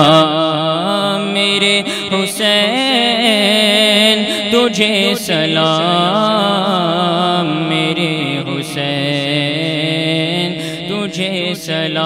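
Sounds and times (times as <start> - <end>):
man chanting solo: 0.0 - 12.0.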